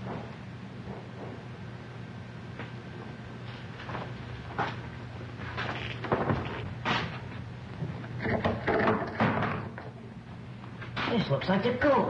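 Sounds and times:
steady low hum: 0:00.0 - 0:12.0
scattered knocks and rustles: 0:05.5 - 0:10.0.

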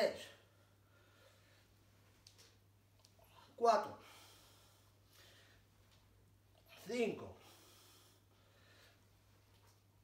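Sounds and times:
man breathing: 0:00.4 - 0:02.0, 0:03.2 - 0:06.0, 0:07.4 - 0:09.4.

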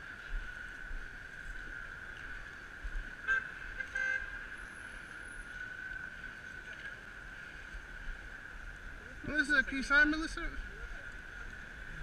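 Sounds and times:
traffic hum: 0:00.0 - 0:12.0
car horn toots: 0:03.3 - 0:04.3.

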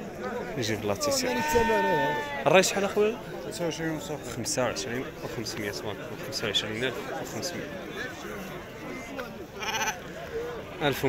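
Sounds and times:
men's voices: 0:00.0 - 0:11.0
sheep bleating: 0:09.6 - 0:10.0.

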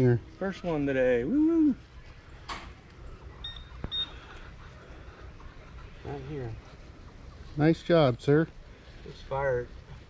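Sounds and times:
faint outdoor background: 0:00.0 - 0:10.0
metal detector beeps: 0:03.4 - 0:04.2.

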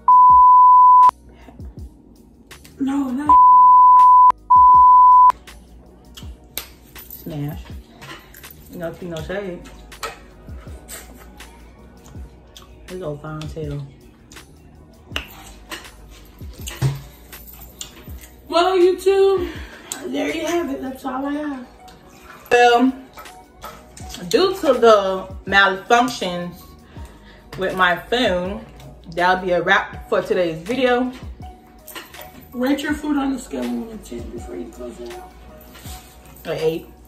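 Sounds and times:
censor bleep tone: 0:00.0 - 0:01.1, 0:03.3 - 0:05.3.

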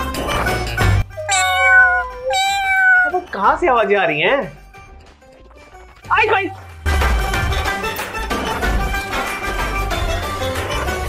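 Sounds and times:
rhythmic background music: 0:00.0 - 0:11.0
cat meowing: 0:01.1 - 0:03.3.

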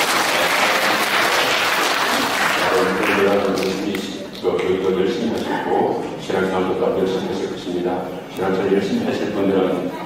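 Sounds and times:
congregation applauding: 0:00.0 - 0:04.8
man speaking: 0:02.6 - 0:10.0.

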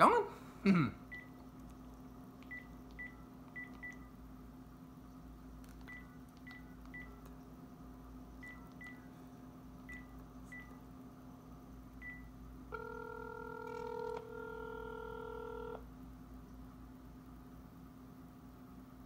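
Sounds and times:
phone ringing tone: 0:12.0 - 0:15.9.

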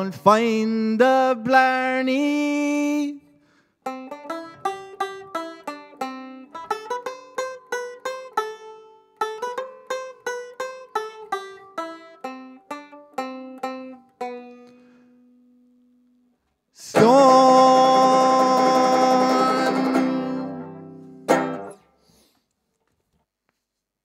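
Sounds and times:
plucked banjo: 0:03.8 - 0:16.1, 0:16.8 - 0:21.9.

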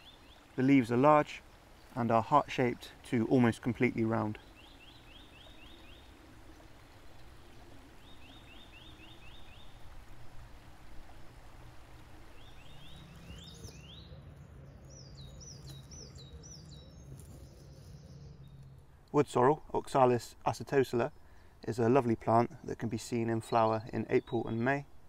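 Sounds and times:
small songbirds singing: 0:00.0 - 0:10.0, 0:11.8 - 0:24.9
low steady hum: 0:00.0 - 0:23.2.

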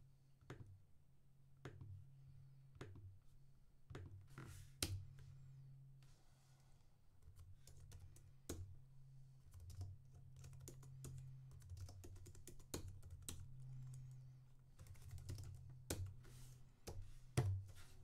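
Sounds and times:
typing on computer keyboard: 0:09.5 - 0:14.1, 0:14.8 - 0:16.1.

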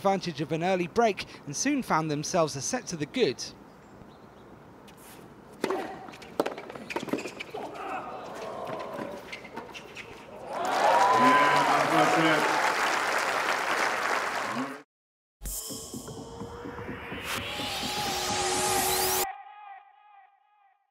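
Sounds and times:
racket hitting tennis ball: 0:05.5 - 0:07.6
crowd cheering and applause: 0:10.4 - 0:14.8.

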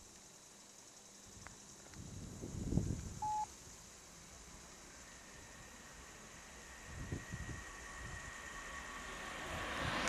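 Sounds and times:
wind buffeting microphone: 0:01.9 - 0:03.4, 0:06.7 - 0:08.6
short electronic beep: 0:03.2 - 0:03.5.

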